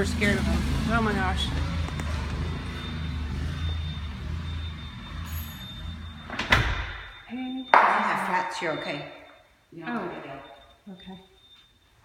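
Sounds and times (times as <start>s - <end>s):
door banging: 6.2s - 7.2s.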